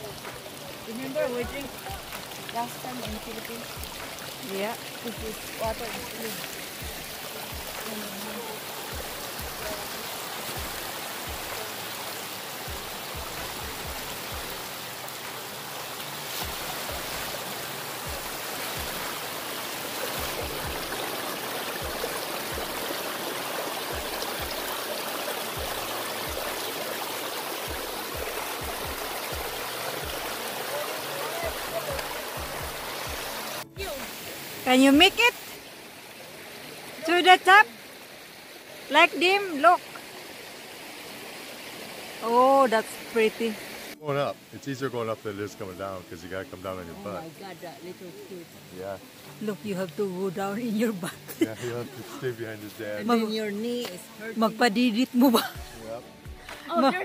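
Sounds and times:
creek water splashing over rocks: 0.0s - 57.0s.

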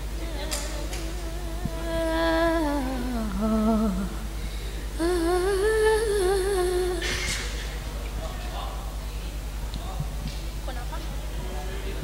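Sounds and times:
woman singing unaccompanied: 0.0s - 4.4s, 5.0s - 7.4s
low electrical hum: 0.0s - 12.0s.

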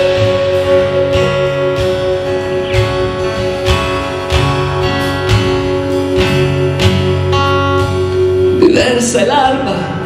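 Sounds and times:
acoustic guitar strumming: 0.0s - 10.0s
bass: 0.0s - 10.0s
keyboard chords: 0.0s - 10.0s.

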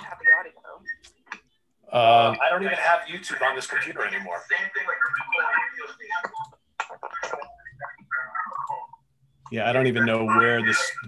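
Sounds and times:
voices from a video call: 0.0s - 11.0s.

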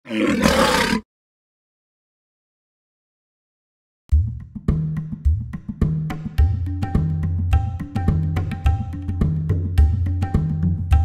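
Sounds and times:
rough roar-like sound effect: 0.0s - 1.1s.

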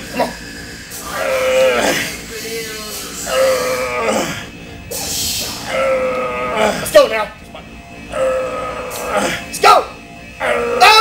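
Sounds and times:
man groaning with strain: 1.0s - 2.3s, 3.2s - 4.6s, 5.6s - 7.0s, 8.1s - 9.5s.

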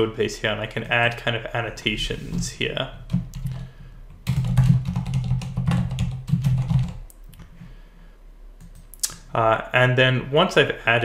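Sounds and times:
typing on computer keyboard: 3.1s - 7.2s.

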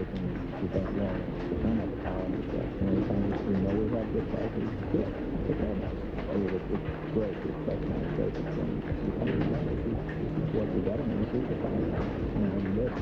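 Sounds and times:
muffled tv commercials: 0.0s - 13.0s
rain tapping a window: 0.0s - 13.0s.

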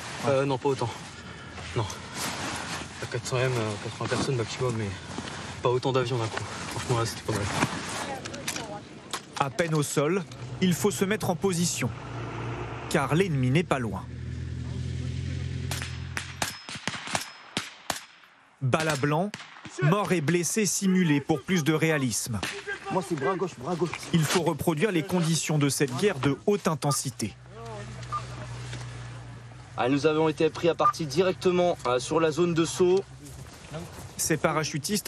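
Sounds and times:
faint outdoor background noise: 0.0s - 35.0s
low steady hum: 9.8s - 16.6s
rifle shots: 15.6s - 19.9s
radio handset beep: 26.8s - 27.2s, 28.0s - 28.4s.

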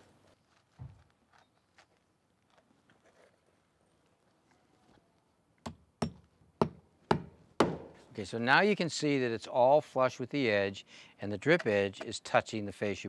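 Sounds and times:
hammer striking nail: 5.6s - 8.0s.

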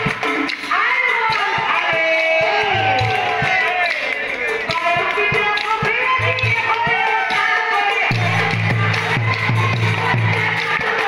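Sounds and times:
sharp percussion strikes: 0.0s - 11.0s
woman singing devotional melody: 0.7s - 2.9s, 4.7s - 11.0s.

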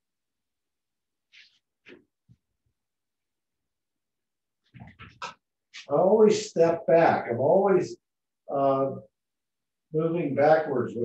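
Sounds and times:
man speaking: 5.8s - 9.1s, 9.9s - 11.0s.

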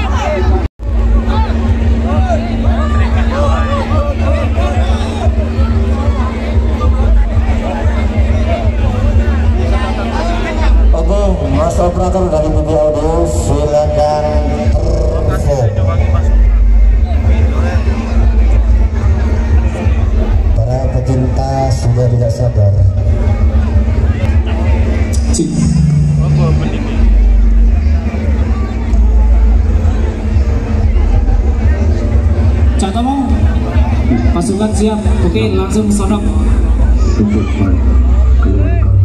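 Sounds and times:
crowd chatter: 0.0s - 39.0s
loud music with heavy bass: 0.0s - 39.0s
person speaking over music: 25.1s - 27.7s.

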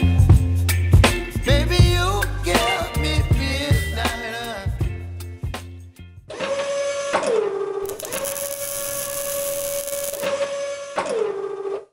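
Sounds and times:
motor-like mechanical whine: 7.8s - 10.7s.

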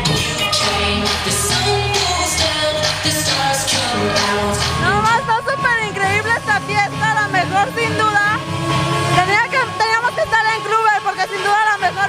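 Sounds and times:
electronic dance music bass: 0.0s - 12.0s
woman talking into microphone: 4.8s - 8.4s, 9.2s - 12.0s.

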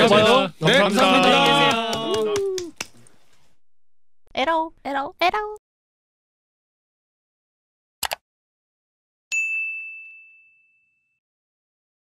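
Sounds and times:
bright bell ding: 9.3s - 11.2s.

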